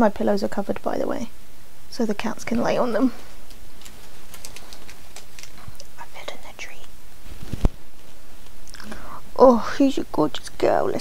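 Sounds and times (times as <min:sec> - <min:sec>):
soft whispering: 0:05.6 - 0:07.0.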